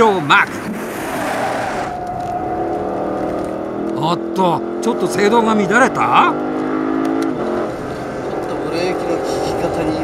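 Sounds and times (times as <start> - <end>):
car engine accelerating: 0.1 - 10.0.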